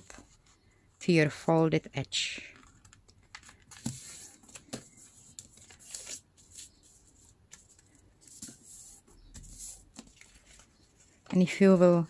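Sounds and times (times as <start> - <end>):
newspaper rustling: 3.4 - 12.0.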